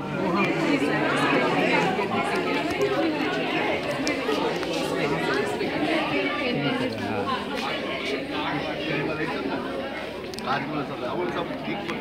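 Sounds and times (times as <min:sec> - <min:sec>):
crowd talking indoors: 0:00.0 - 0:12.0.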